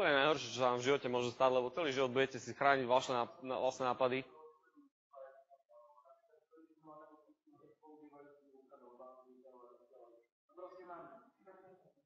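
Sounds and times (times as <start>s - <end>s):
lecturer speaking into microphone: 0.0s - 4.6s
faint indistinct speech: 0.0s - 12.0s.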